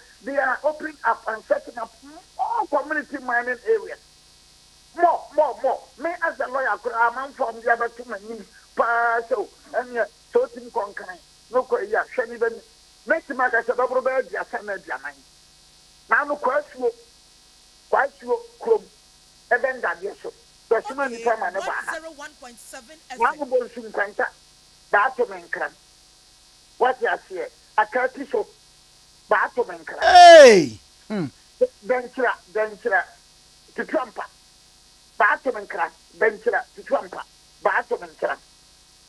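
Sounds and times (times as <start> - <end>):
faint electrical hum: 0.0 - 39.0
man talking over telephone: 20.7 - 24.1, 30.0 - 31.3.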